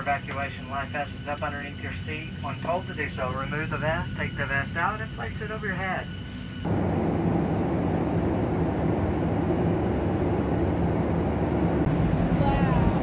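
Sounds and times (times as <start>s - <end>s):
jet engines and airflow rushing: 0.0s - 13.0s
steady low hum: 0.0s - 13.0s.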